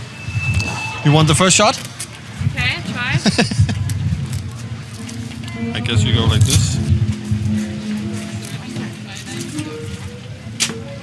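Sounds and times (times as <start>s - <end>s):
faint voices: 1.0s - 11.0s
background music of held notes: 5.1s - 11.0s.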